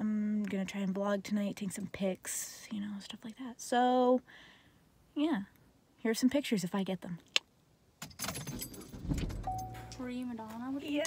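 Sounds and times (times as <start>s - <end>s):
keys jangling: 8.0s - 10.0s.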